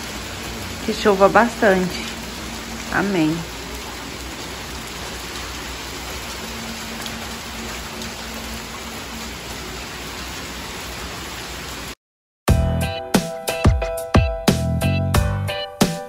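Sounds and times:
rain hissing on ground: 0:00.0 - 0:12.0.

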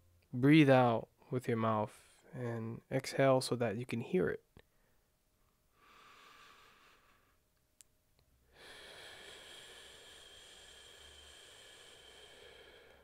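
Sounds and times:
faint breath: 0:05.7 - 0:07.4, 0:08.5 - 0:13.0
person exhaling slowly: 0:08.5 - 0:13.0.

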